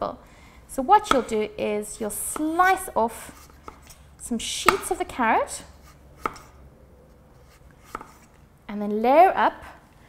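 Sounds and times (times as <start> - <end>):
knife slicing carrot: 0.9 - 4.0, 5.7 - 6.6, 7.4 - 8.3
knife striking wooden board: 1.0 - 1.4, 3.4 - 4.0, 4.6 - 5.0, 5.8 - 6.5, 7.8 - 8.3.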